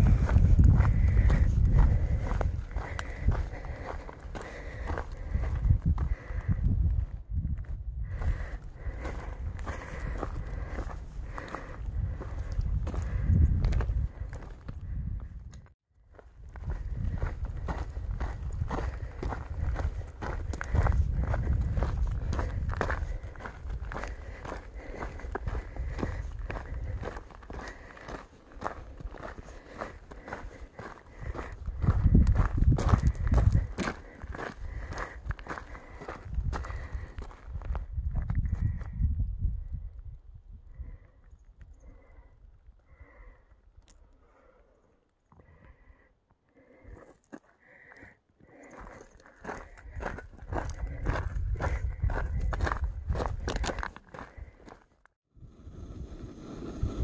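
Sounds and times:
low rumble: 0.0s - 4.4s
footsteps on rocky trail: 0.0s - 38.9s, 46.6s - 55.1s.

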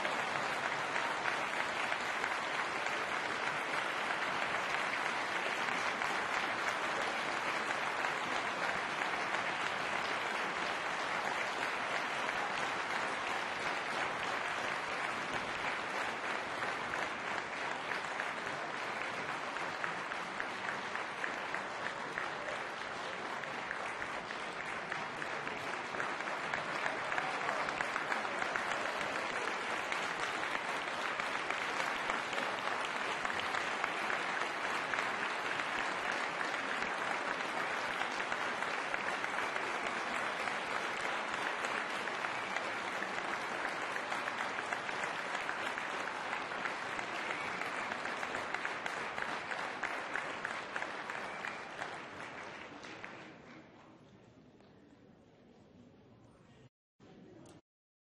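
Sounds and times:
audience applauding: 0.0s - 53.5s.

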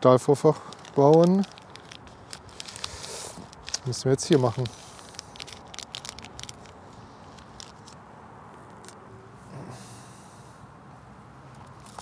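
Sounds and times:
plastic packet crinkling: 0.4s - 8.0s.

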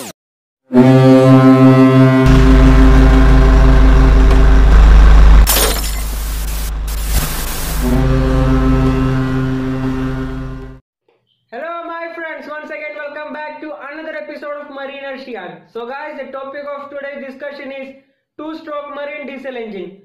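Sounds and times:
deep ship's horn: 0.7s - 5.5s, 6.5s - 10.8s
heavy low rumble: 2.1s - 10.8s
loud hissing burst: 5.7s - 8.1s.

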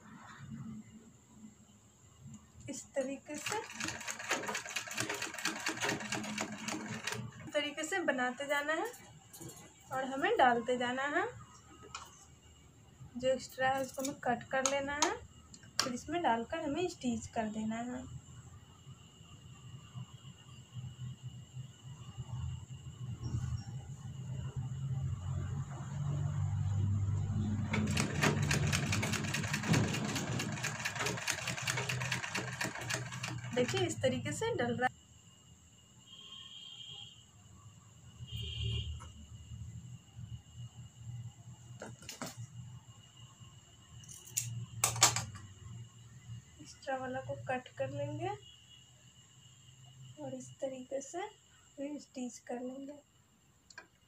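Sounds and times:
sewing machine stitching: 3.3s - 7.5s, 27.6s - 34.0s.

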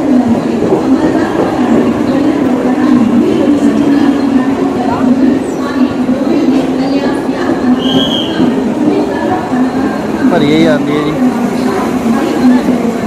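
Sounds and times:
train running past: 0.0s - 13.0s.

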